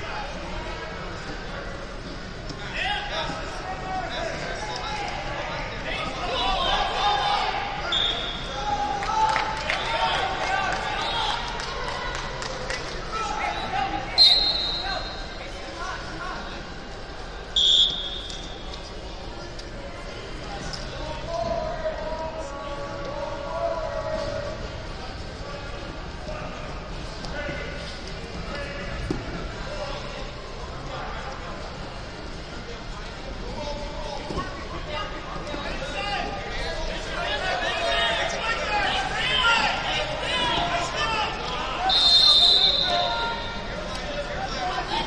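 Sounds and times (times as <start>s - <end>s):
shrill whistle blasts: 7.9s - 8.4s, 14.2s - 15.3s, 17.6s - 18.5s, 41.9s - 43.4s
voices calling out: 37.0s - 44.0s.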